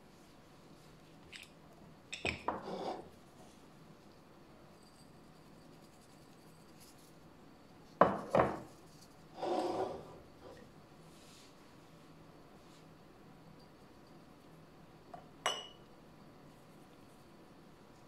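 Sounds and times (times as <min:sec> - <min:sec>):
glass jars clinking: 0:15.4 - 0:15.8.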